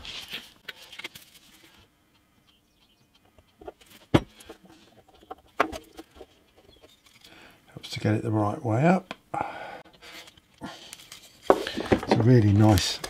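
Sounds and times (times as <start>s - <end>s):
wooden pieces knocking and tapping: 3.2s - 7.4s, 11.4s - 13.0s.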